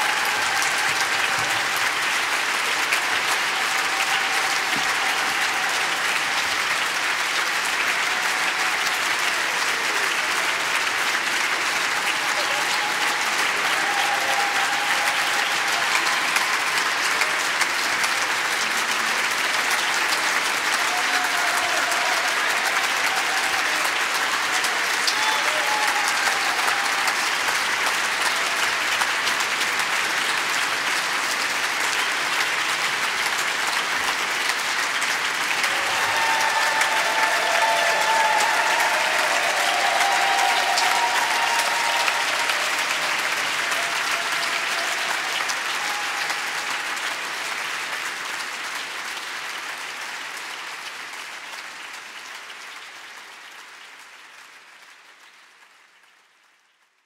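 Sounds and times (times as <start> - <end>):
audience applause: 0.0 - 57.0.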